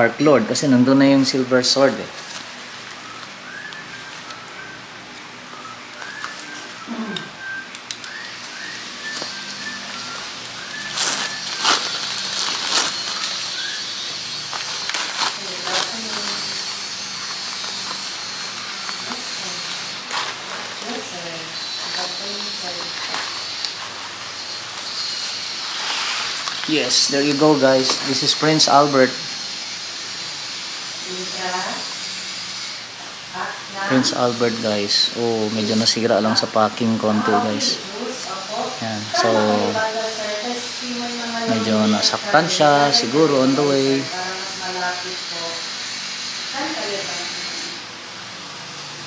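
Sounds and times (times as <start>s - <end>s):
paper crinkling and tearing: 9.0s - 28.3s.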